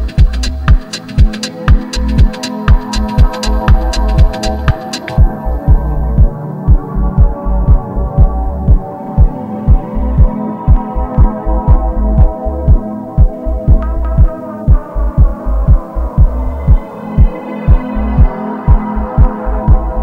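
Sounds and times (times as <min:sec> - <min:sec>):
hi-hat ticks: 0:00.0 - 0:07.3
held synth chords: 0:00.0 - 0:20.0
kick drum: 0:00.0 - 0:20.0
deep sustained bass: 0:05.3 - 0:08.7, 0:10.9 - 0:12.7, 0:14.8 - 0:16.8.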